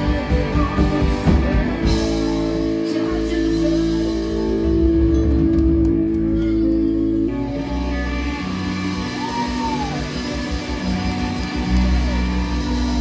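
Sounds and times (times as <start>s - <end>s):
electric guitar chords: 0.0s - 13.0s
low pulsing bass: 0.0s - 13.0s
stage keyboard chords: 0.0s - 13.0s.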